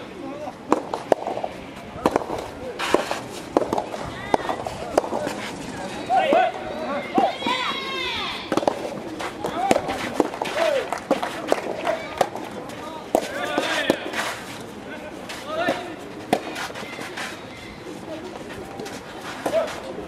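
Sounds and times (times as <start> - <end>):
players shouting and calling: 0.0 - 20.0
rackets hitting rubber balls: 0.7 - 5.4, 8.5 - 14.1.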